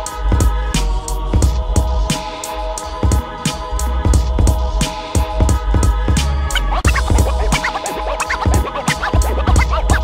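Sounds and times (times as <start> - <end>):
hip-hop drum beat: 0.0 - 10.0
vinyl scratching: 6.2 - 10.0.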